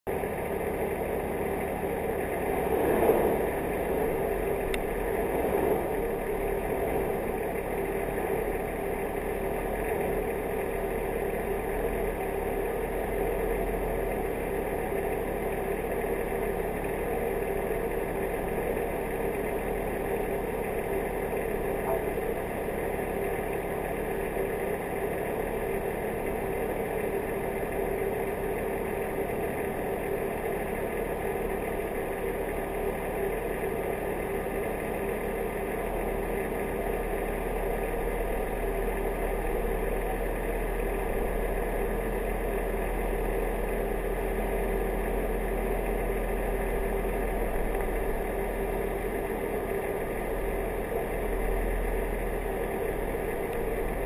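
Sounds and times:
vehicle engine running at low revs: 0.1s - 54.0s.

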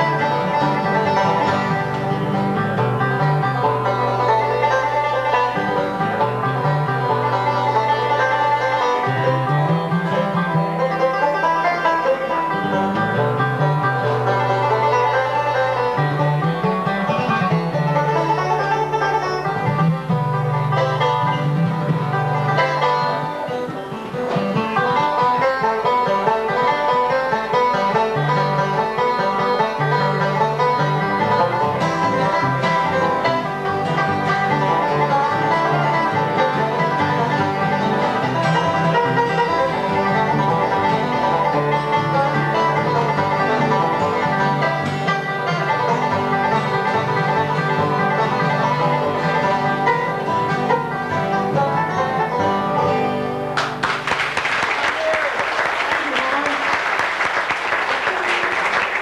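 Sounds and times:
fiddle: 0.0s - 54.1s, 56.0s - 59.0s
strummed acoustic guitars: 0.0s - 54.4s
banjo picking: 0.0s - 59.0s.

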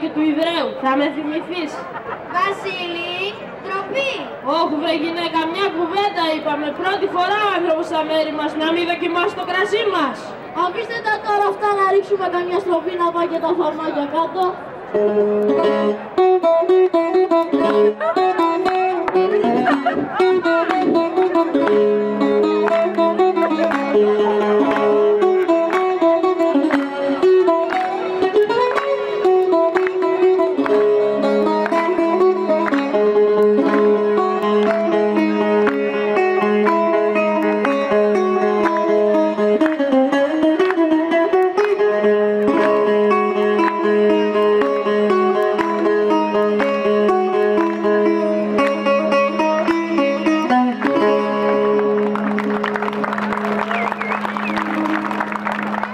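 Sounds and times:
plucked bouzouki melody: 14.8s - 55.9s.

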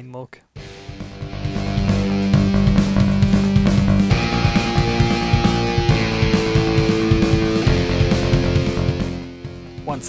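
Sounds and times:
guitar-led background music: 0.6s - 10.0s.

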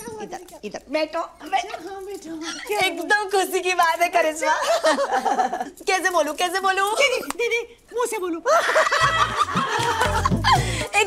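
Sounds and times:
people laughing loudly: 8.5s - 11.0s.

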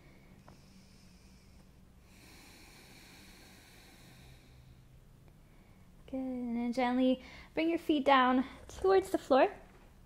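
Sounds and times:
slow deep breathing: 0.0s - 6.0s.

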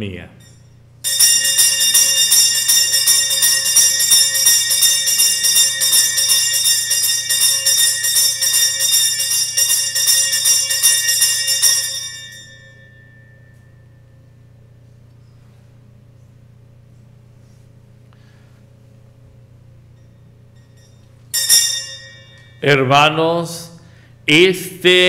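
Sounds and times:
small bells ringing rapidly: 0.4s - 13.6s, 20.0s - 22.9s.

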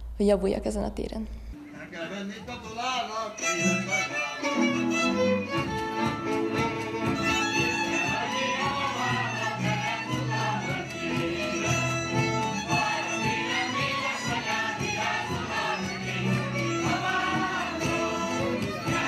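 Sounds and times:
folk music with fiddle: 1.6s - 19.0s.

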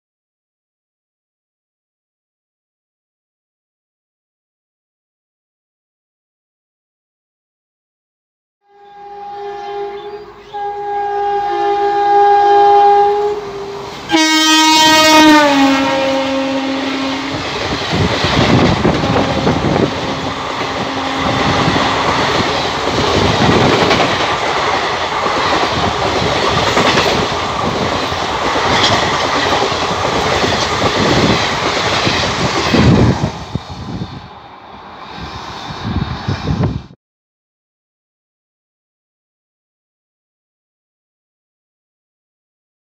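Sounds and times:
train horn blasts: 8.6s - 17.5s, 18.8s - 22.1s
train coaches rushing past: 13.3s - 37.0s.

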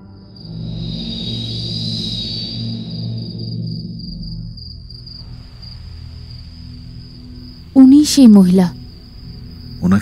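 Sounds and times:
crickets chirping: 0.0s - 10.0s
low droning music: 0.0s - 10.0s.

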